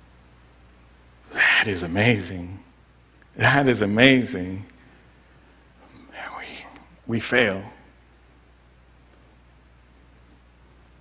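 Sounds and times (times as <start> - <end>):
steady low hum: 0.0 - 11.0
man whispering: 1.3 - 2.5, 5.8 - 7.9.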